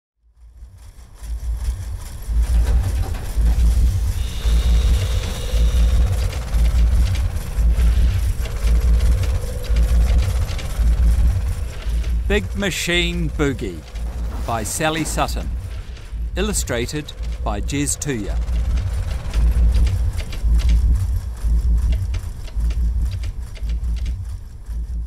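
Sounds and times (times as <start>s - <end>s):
diesel engine pulsing rumble: 0.3s - 25.0s
faint wavering whine: 0.4s - 25.0s.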